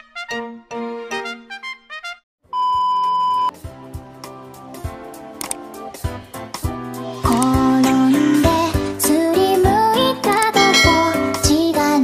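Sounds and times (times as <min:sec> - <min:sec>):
music: 0:00.0 - 0:02.2, 0:03.5 - 0:12.0
electronic beep: 0:02.6 - 0:03.5.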